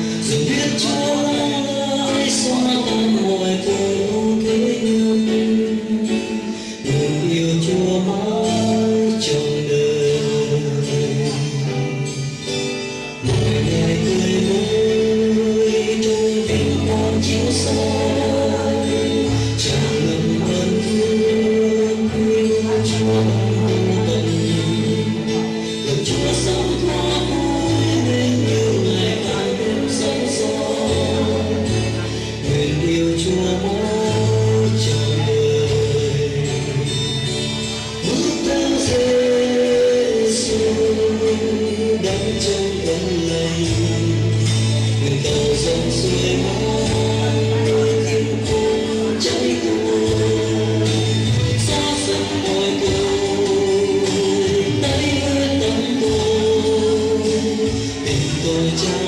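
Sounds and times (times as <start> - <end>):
instrumental accompaniment with bass: 0.0 - 59.0.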